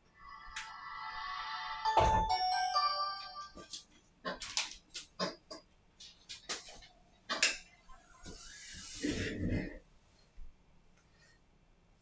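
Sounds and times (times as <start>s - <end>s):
tablet startup chime: 1.8s - 3.6s.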